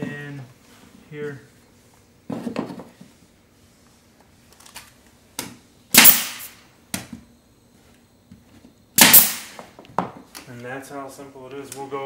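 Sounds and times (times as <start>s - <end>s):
nail gun shot: 5.9s - 6.6s, 9.0s - 9.6s.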